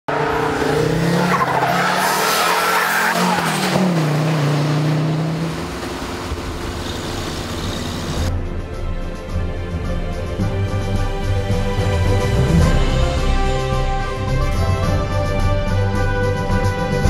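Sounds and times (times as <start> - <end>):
car engine running hard: 0.1 - 8.3.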